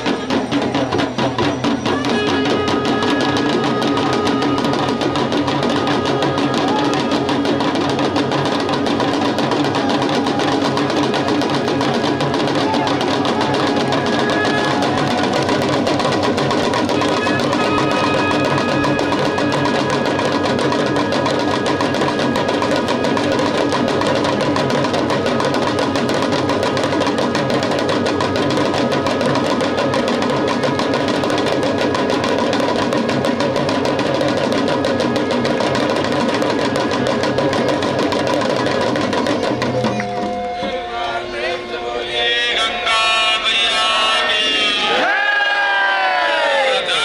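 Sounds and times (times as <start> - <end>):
hand drum beaten fast: 0.0 - 40.6
brass bells ringing: 1.4 - 9.0, 13.5 - 31.4, 39.5 - 44.2.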